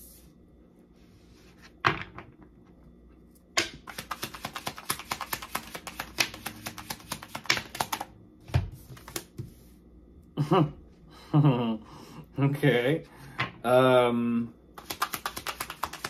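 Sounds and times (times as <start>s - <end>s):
cards being shuffled: 3.8s - 8.1s, 8.8s - 9.6s, 14.8s - 16.0s.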